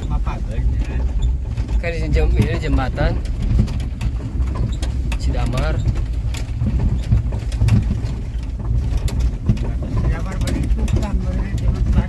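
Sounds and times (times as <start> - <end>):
knocks and rattles: 0.0 - 12.0
vehicle engine and road rumble: 0.0 - 12.0.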